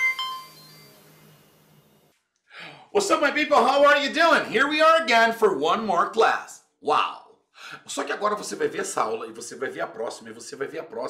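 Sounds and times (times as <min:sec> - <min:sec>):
bright chime notes: 0:00.0 - 0:01.1.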